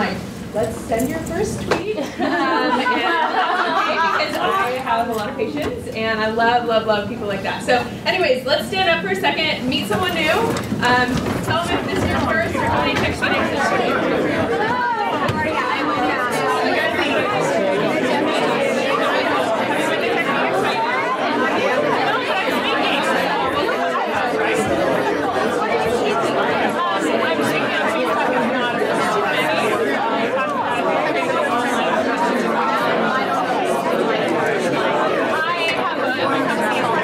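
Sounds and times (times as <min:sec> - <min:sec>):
hubbub of overlapping conversations: 0:00.0 - 0:37.0.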